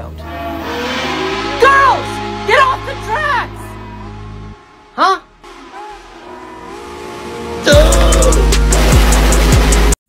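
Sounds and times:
steam locomotive tones: 0:00.0 - 0:10.0.

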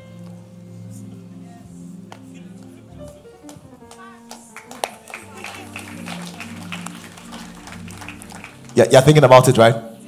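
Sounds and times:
sustained keyboard chords: 0:00.0 - 0:10.0
congregation murmuring: 0:01.8 - 0:10.0
scattered handclaps: 0:02.1 - 0:09.4.

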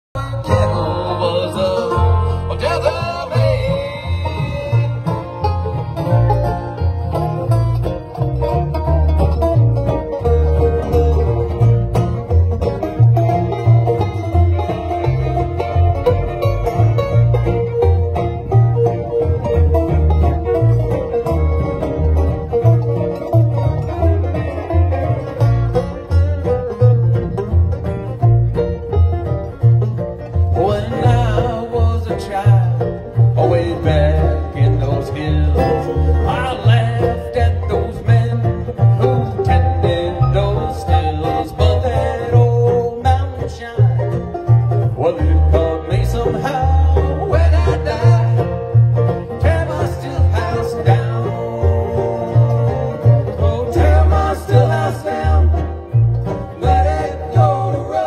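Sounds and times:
banjo: 0:00.1 - 0:58.0
acoustic guitar: 0:00.2 - 0:58.0
pulsing bass line: 0:00.2 - 0:58.0.

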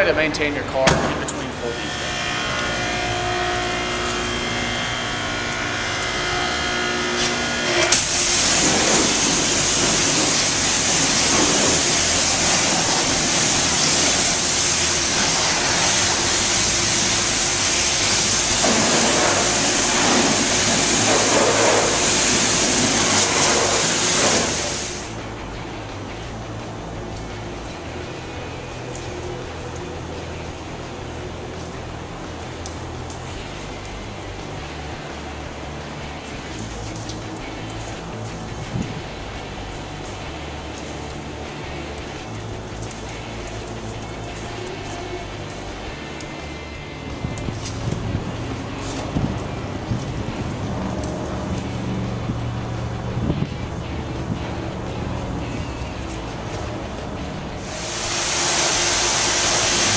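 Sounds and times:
background music: 0:00.0 - 0:59.9
pressure washer spraying water: 0:00.1 - 0:59.9.

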